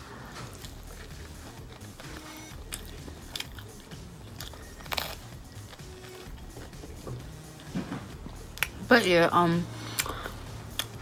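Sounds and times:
person chewing pizza: 0.1 - 8.8, 9.8 - 11.0
bite crunches: 0.5 - 6.7.

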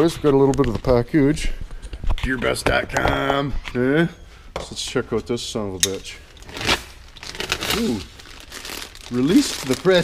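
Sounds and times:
plastic mailer crinkling: 6.4 - 10.0.

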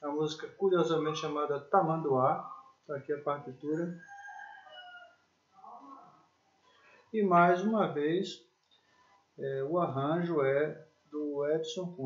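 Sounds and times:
faint animal call: 0.5 - 6.3.

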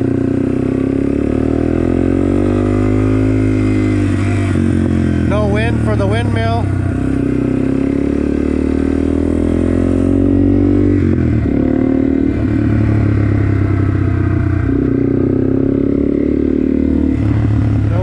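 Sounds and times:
motorcycle engine accelerating: 0.0 - 18.0.

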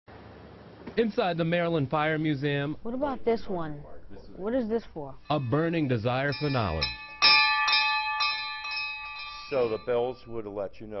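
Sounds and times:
warning bell ringing: 5.2 - 10.9.

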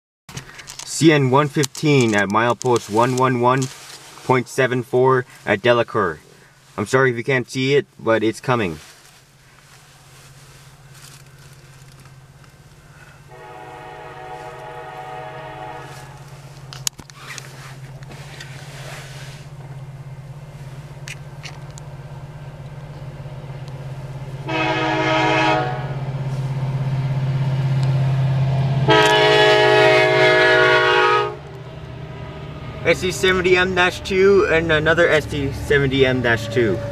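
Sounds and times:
diesel locomotive drone: 0.3 - 7.0, 7.9 - 36.9
train air horn blasts: 13.0 - 16.7, 24.4 - 26.5, 28.6 - 31.5, 36.2 - 36.9.

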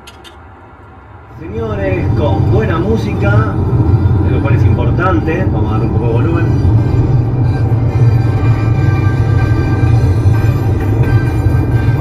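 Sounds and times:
loud music from car radio: 4.2 - 12.0.

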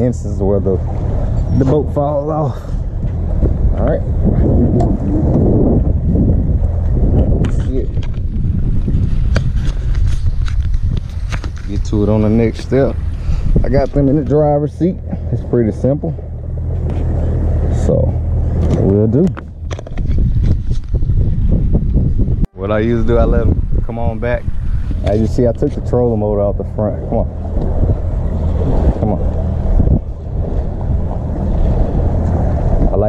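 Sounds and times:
vehicle running: 0.0 - 33.0
wind buffeting microphone: 0.0 - 33.0.

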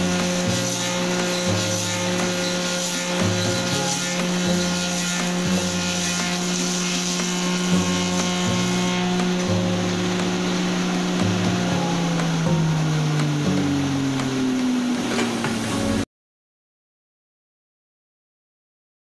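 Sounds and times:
cutter droning on wood: 0.0 - 16.0
lathe motor humming: 0.0 - 16.0.

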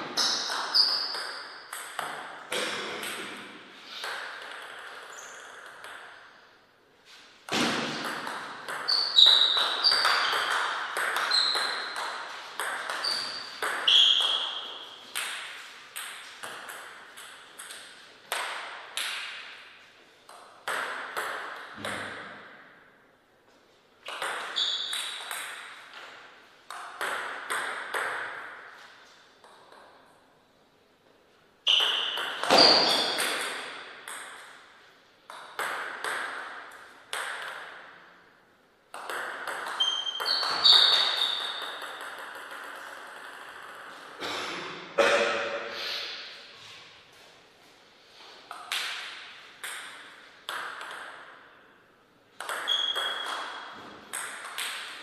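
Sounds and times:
table tennis ball clicking: 38.9 - 43.9, 52.4 - 55.0.

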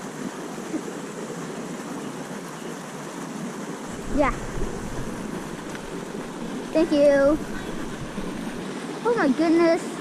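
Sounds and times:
running water rushing: 0.0 - 10.0
faint voices: 3.9 - 8.6.

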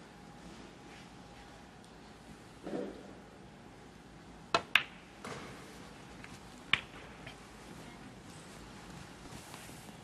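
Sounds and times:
billiard balls clicking: 4.5 - 5.2, 6.2 - 7.4
cue tip striking ball: 4.5 - 5.4.

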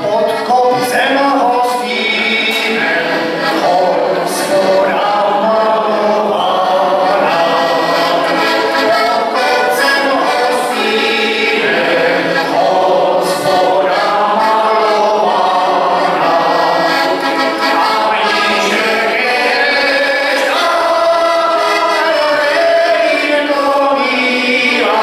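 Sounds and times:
button accordion folk tune: 0.0 - 25.0.

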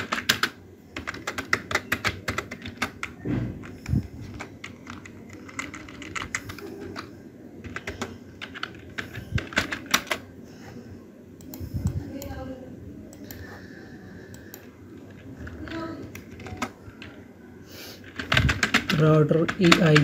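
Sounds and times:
computer keyboard typing: 0.0 - 10.3, 14.3 - 17.2, 18.0 - 20.0.

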